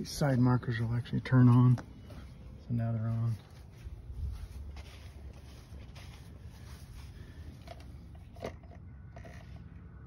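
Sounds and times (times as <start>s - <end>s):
low steady rumble: 0.0s - 10.0s
faint footsteps: 0.8s - 8.6s.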